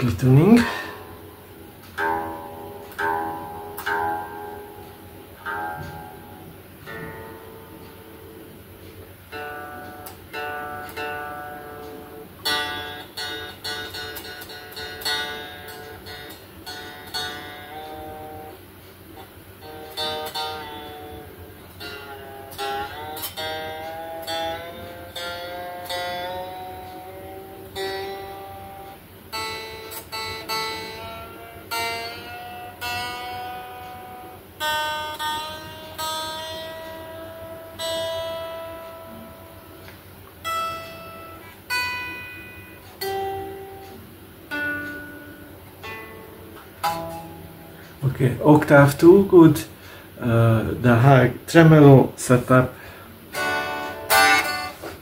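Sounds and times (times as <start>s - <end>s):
electric guitar notes and chords: 0.0s - 48.0s, 52.8s - 55.0s.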